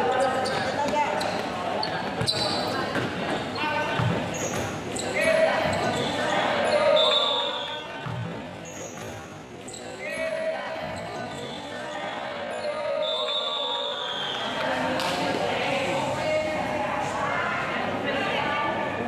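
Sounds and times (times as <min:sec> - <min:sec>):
people shouting in a hall: 0:05.0 - 0:08.0, 0:09.9 - 0:19.0.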